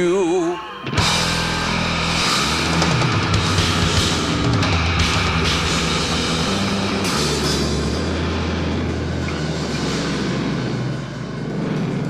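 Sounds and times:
distorted electric guitar chord: 0.0s - 12.0s
drums and cymbals: 1.0s - 12.0s.

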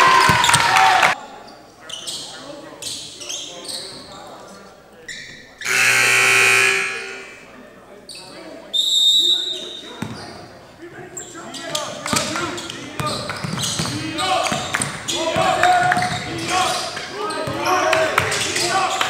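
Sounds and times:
referee's whistle: 5.6s - 7.4s, 8.7s - 10.0s.

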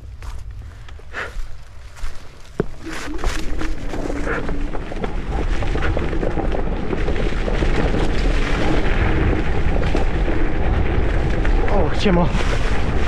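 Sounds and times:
tyres rolling over dry leaves: 0.0s - 13.0s
wind rumbling on microphone: 0.0s - 13.0s.

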